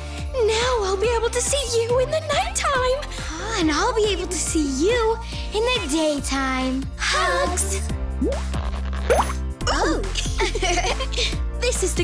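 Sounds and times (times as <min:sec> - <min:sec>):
cartoon background music: 0:00.0 - 0:12.0
rising pop sound effect: 0:08.2 - 0:09.4.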